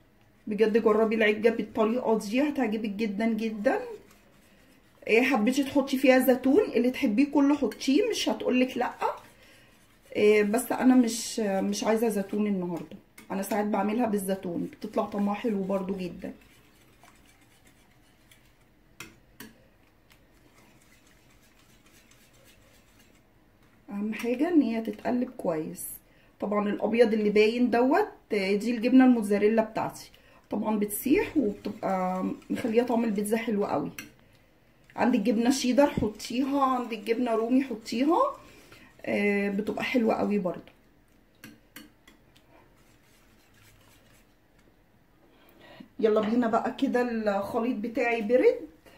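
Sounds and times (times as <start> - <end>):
whisk tapping ceramic bowl: 7.5 - 14.0, 14.6 - 23.3, 30.7 - 34.2, 35.1 - 40.4, 41.4 - 44.3.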